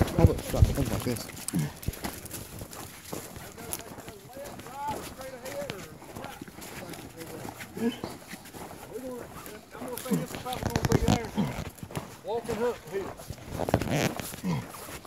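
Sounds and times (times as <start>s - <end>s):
footsteps through leaves and brush: 0.0s - 15.0s.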